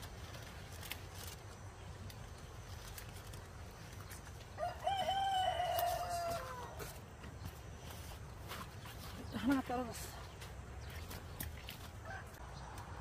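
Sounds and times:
rooster crowing: 4.6 - 6.9.

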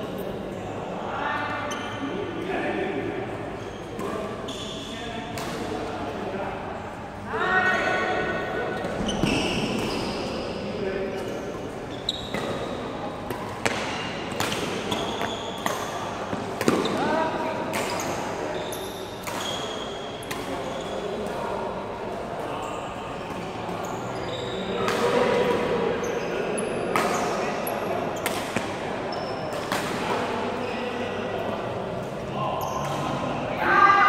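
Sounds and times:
voices in a sports hall: 0.0 - 34.0
shoe squeaks on court floor: 1.6 - 2.1, 3.6 - 5.0, 8.8 - 10.6, 11.2 - 12.8, 14.8 - 16.0, 17.8 - 21.1, 22.6 - 24.9, 26.0 - 27.4, 29.1 - 29.6, 32.6 - 33.1
racket striking shuttlecock: 13.3 - 16.9.

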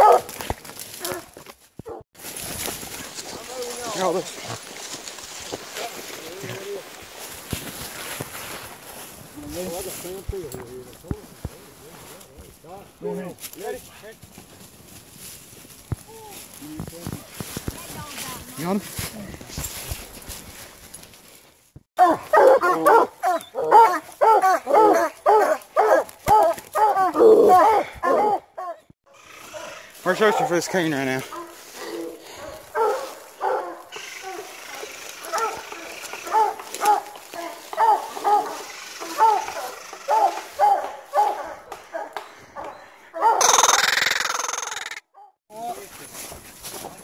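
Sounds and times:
hounds barking: 0.0 - 0.4, 22.0 - 43.9
brush snapping: 0.2 - 1.6, 26.0 - 26.8, 35.0 - 37.8.

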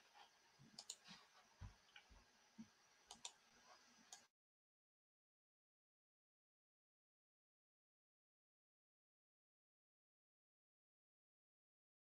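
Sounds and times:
faint computer mouse clicks: 0.8 - 1.2, 3.1 - 3.4.

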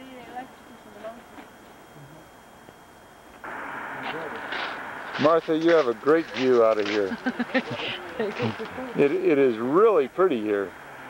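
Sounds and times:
outdoor background hiss: 0.0 - 11.0
faint voices: 3.5 - 11.0.

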